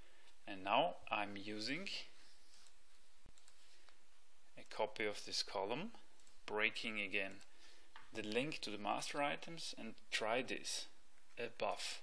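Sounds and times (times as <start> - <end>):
faint steady hiss: 0.0 - 12.0
computer mouse clicks: 2.5 - 4.0.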